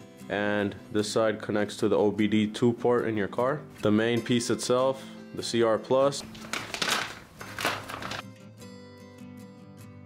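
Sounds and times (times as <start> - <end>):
soft background music: 0.0 - 10.0
plastic bag crinkling: 6.2 - 8.2.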